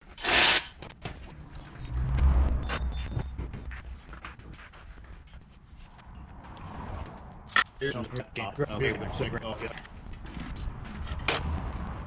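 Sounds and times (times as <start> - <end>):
loud scraping rush: 0.1 - 0.8
low rumble of wheels: 0.8 - 12.0.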